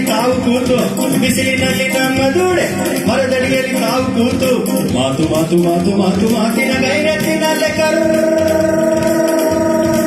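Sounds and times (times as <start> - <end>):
keyboard accompaniment: 0.0 - 10.0.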